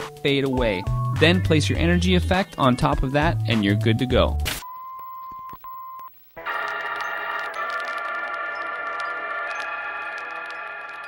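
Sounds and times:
shimmering chiming electronic sound: 0:06.5 - 0:11.0.

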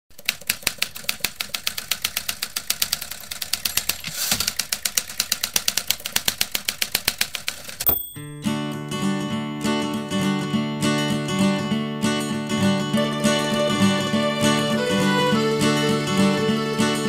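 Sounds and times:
typewriter keys clacking: 0:00.2 - 0:08.1.

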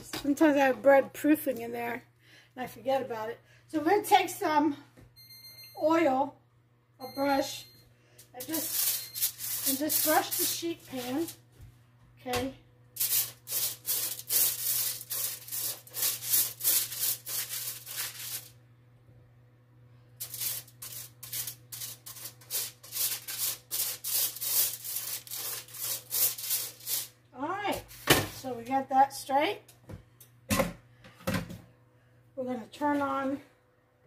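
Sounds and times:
brush rubbing over aluminium foil: 0:08.4 - 0:11.4, 0:13.0 - 0:18.6, 0:20.2 - 0:27.2.

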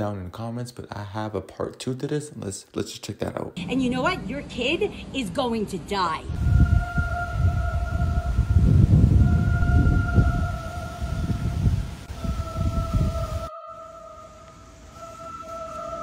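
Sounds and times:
low rumble: 0:06.2 - 0:13.5.

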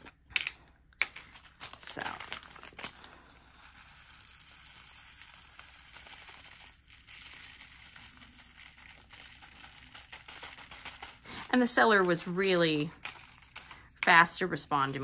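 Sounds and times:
plastic bag crinkling: 0:01.1 - 0:04.0, 0:05.8 - 0:15.0
tiny plastic beads rattling: 0:03.6 - 0:15.0.

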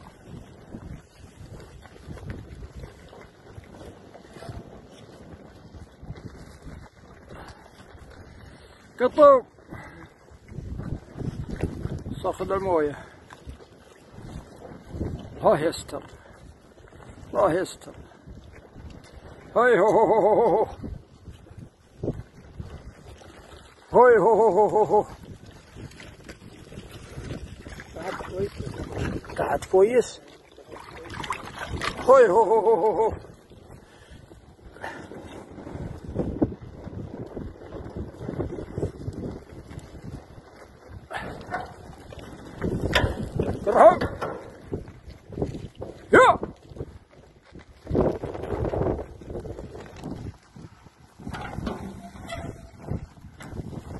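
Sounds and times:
wind buffeting microphone: 0:00.0 - 0:53.9
water sloshing in metal trough: 0:26.9 - 0:32.3, 0:51.1 - 0:53.9
faint crackles and knocks: 0:41.4 - 0:46.0, 0:47.0 - 0:53.9.

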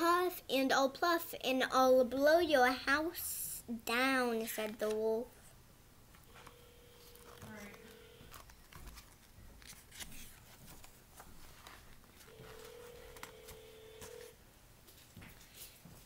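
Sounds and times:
faint steady tone: 0:06.2 - 0:08.3, 0:12.3 - 0:14.4
paper pages turning: 0:06.4 - 0:14.3.

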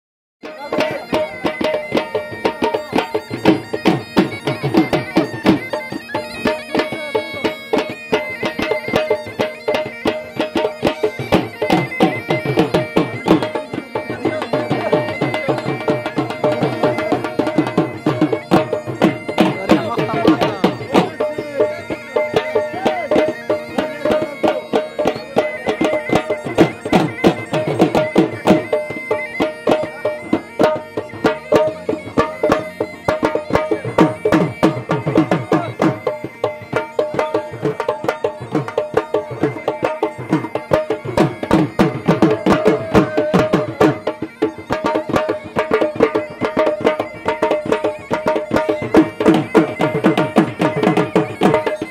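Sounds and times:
double-reed pipe melody: 0:00.4 - 0:51.9
fast driving drum beats: 0:00.4 - 0:51.9.

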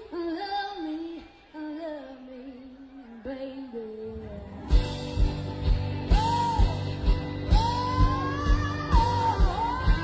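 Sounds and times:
rock song with singing: 0:00.0 - 0:10.0.

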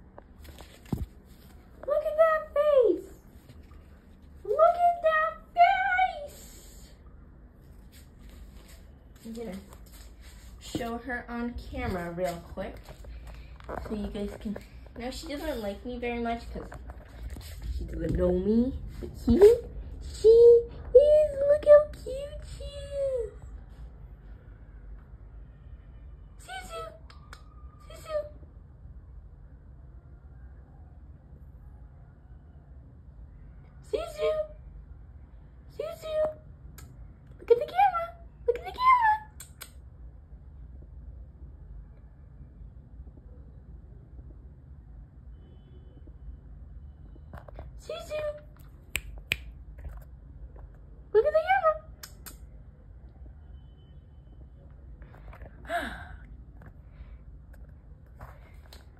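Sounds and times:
breathy sigh: 0:55.6 - 0:56.4.

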